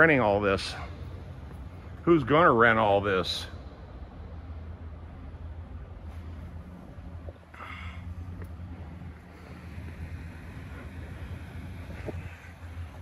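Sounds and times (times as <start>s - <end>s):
wind rumble on microphone: 5.5s - 13.0s.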